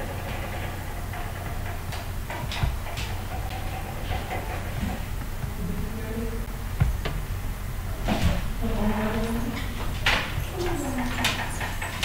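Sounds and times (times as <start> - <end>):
faint background noise: 0.0 - 12.0
steady low hum: 0.0 - 12.0.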